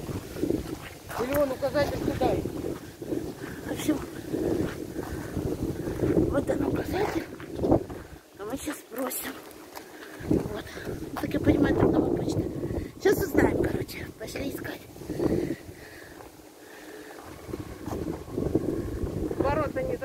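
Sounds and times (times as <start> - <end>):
wind buffeting microphone: 0.0 - 8.7, 10.1 - 20.0.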